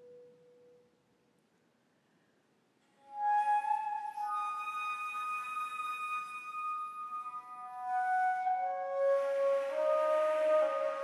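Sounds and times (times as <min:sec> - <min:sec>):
faint flute tone: 0:00.0 - 0:01.1, 0:03.0 - 0:11.0.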